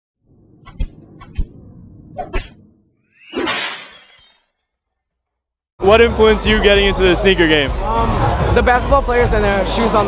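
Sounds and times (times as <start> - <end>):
glass shattering crash: 3.3 - 4.8.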